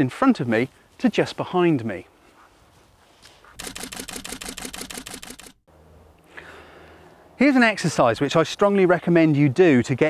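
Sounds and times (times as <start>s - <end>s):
camera shutter burst: 3.6s - 5.6s.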